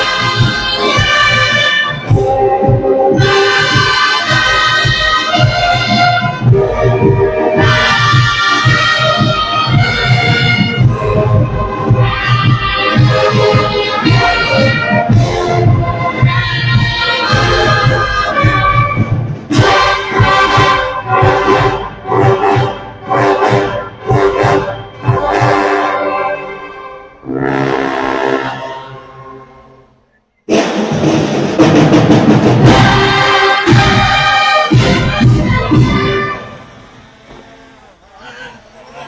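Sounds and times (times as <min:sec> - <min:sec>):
drum beats: 0:00.0 - 0:26.6, 0:30.4 - 0:37.9
marching band playing: 0:00.0 - 0:29.8, 0:30.5 - 0:38.0
people talking and calling out: 0:34.7 - 0:39.0.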